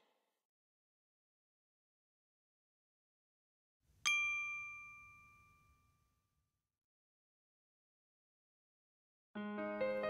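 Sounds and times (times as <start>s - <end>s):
bright bell-like ding: 4.1s - 5.8s.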